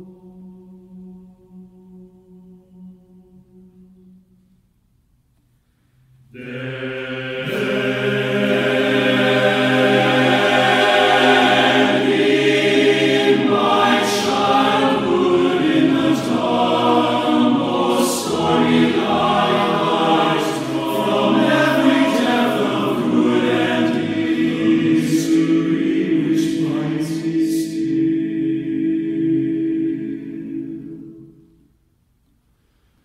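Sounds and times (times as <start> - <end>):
men's choir singing a cappella: 6.4 - 31.6.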